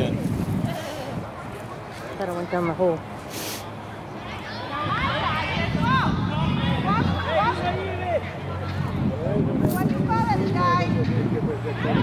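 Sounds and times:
spectators talking: 0.0 - 12.0.

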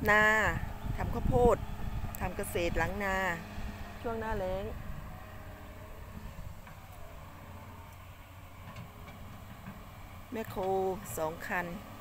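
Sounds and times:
faint diesel engine drone: 0.0 - 12.0.

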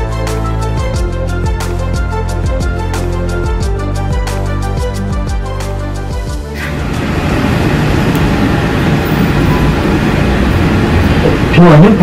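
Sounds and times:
monorail rumbling: 6.5 - 12.0.

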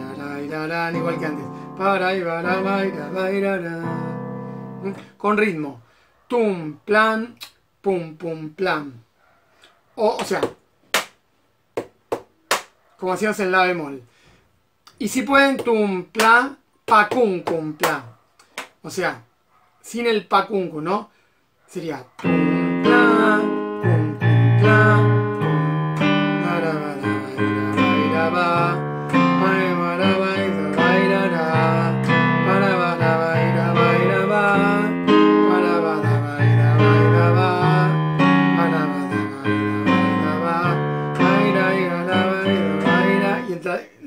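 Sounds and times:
digital piano accompaniment: 0.0 - 5.6, 22.2 - 43.7.

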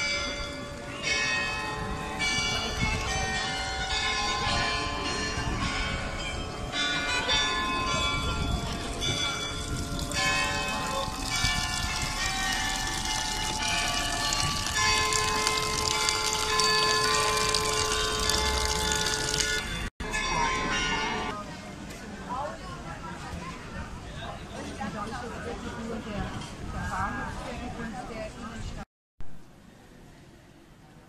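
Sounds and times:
church bells ringing: 0.0 - 21.4
murmur of voices: 20.2 - 28.8.

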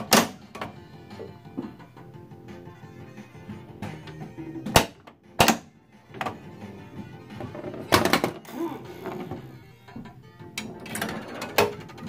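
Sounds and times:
pinball game music: 0.0 - 12.0.

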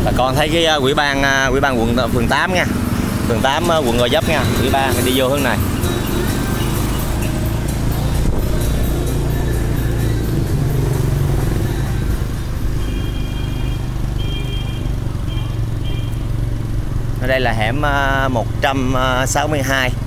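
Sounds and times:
motorbike engine running: 0.0 - 20.0
traffic and road noise: 0.0 - 20.0.

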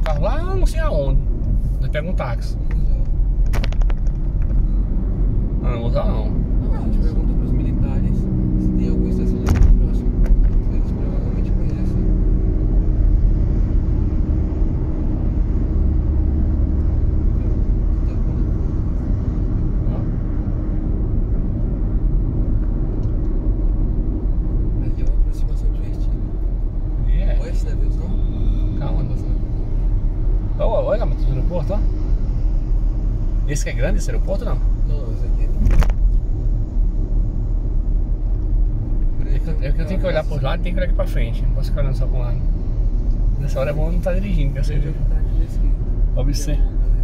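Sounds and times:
car road noise: 0.0 - 47.0.

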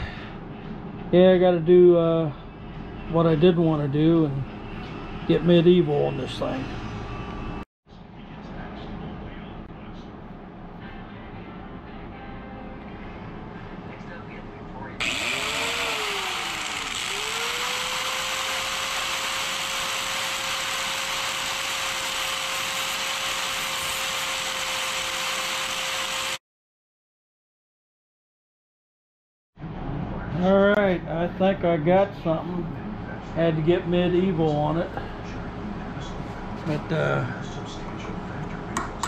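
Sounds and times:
steady shop noise: 0.0 - 10.9, 14.8 - 26.4, 29.6 - 39.0
angle grinder grinding steel: 15.0 - 26.4.

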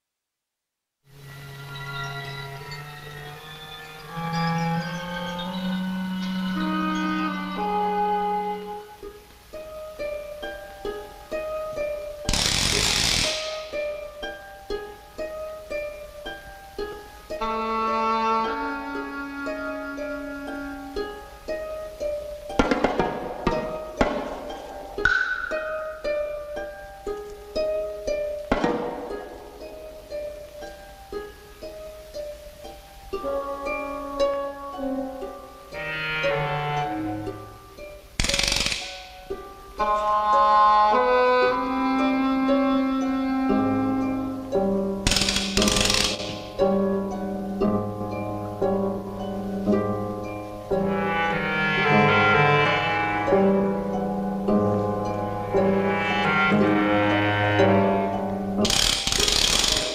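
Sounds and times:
short plucked notes: 1.1 - 59.9
sharp hits: 22.6 - 26.2.

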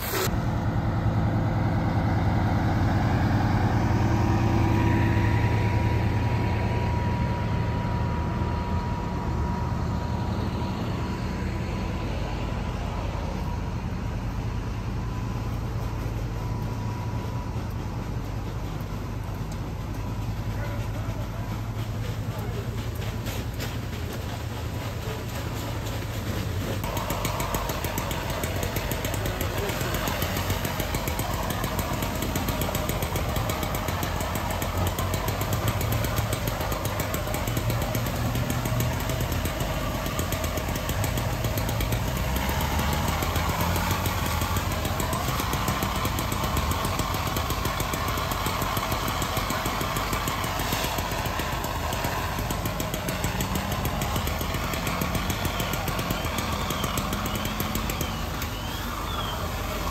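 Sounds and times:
hiss of hose streams and steam: 0.0 - 0.6, 10.2 - 59.9
pump engine drone: 0.0 - 59.9.

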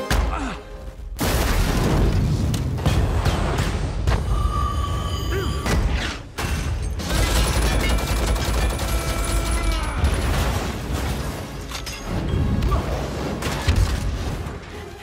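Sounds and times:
action film music: 0.0 - 15.0
explosions: 1.1 - 4.3.

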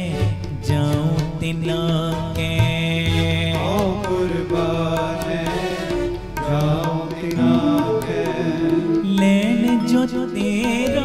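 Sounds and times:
harmoniums playing melody: 0.0 - 11.0
tabla strokes: 0.2 - 11.0.

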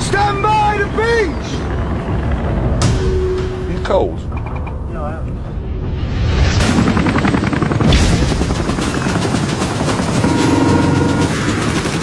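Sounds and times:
helicopter rotor chopping: 0.0 - 2.8, 6.6 - 12.0.

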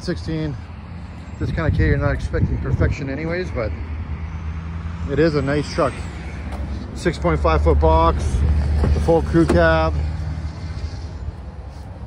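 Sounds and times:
vehicle engine rumbling: 0.0 - 12.0.

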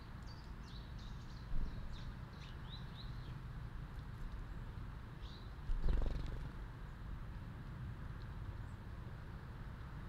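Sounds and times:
bird wings fluttering: 5.7 - 6.6.

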